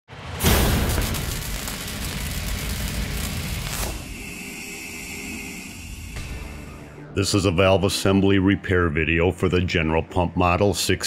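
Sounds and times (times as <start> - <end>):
rumbling impact hit: 0.2 - 4.0
steady drone: 0.4 - 10.0
thin high tone: 3.9 - 7.3.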